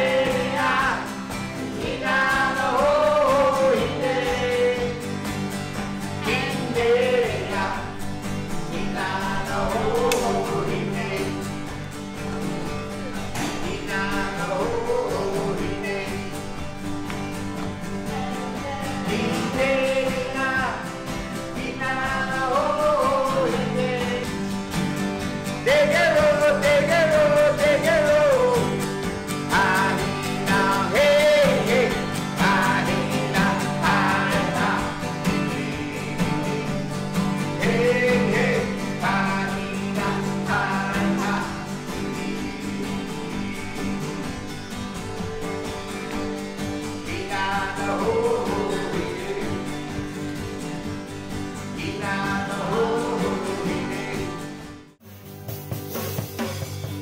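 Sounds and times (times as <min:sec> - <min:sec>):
man singing: 0:00.0 - 0:16.8, 0:17.9 - 0:24.6, 0:25.5 - 0:44.5, 0:46.8 - 0:50.2, 0:51.6 - 0:54.7
strummed acoustic guitars: 0:00.0 - 0:57.0.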